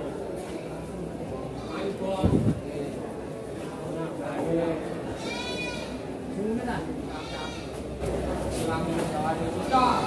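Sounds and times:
goats bleating: 5.2s - 6.0s.

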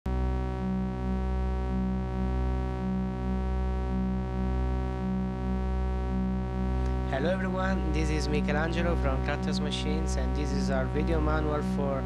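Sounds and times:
synthesizer low drone: 0.1s - 12.0s.

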